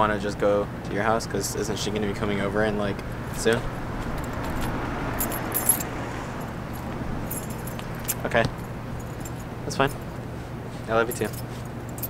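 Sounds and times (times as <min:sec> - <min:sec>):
background hum: 0:00.0 - 0:12.0
light metallic jingling: 0:02.9 - 0:12.0.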